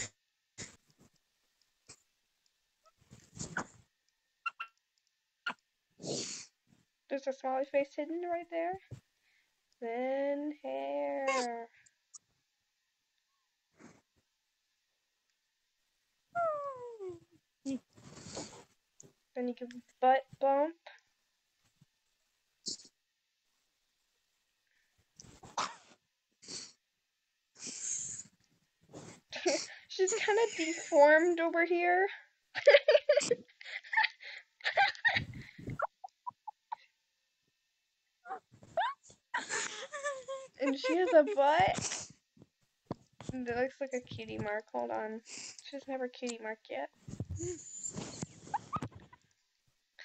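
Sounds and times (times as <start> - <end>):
girl squealing: 16.4 - 17.2, 38.3 - 39.0
girl giggling breathily: 32.6 - 36.8, 38.8 - 42.0.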